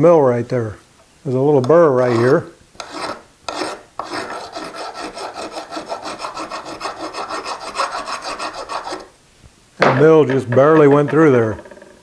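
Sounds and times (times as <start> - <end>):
hand file filing metal: 2.0 - 9.1.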